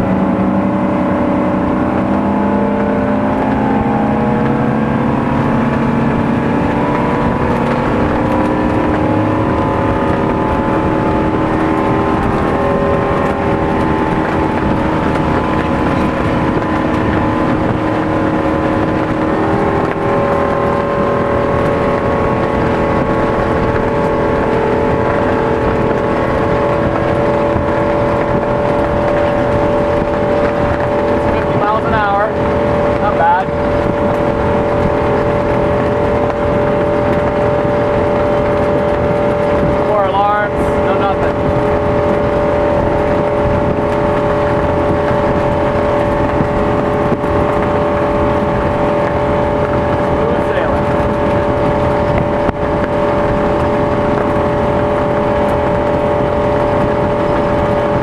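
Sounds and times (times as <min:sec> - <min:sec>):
boat engine running at speed: 0:00.0 - 0:58.0
rush of wind and water: 0:00.0 - 0:58.0.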